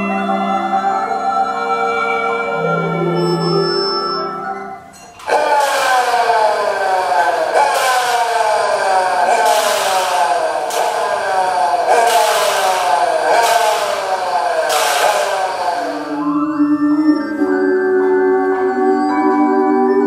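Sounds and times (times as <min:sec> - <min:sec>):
electronic tones sliding downward: 0:00.0 - 0:20.0.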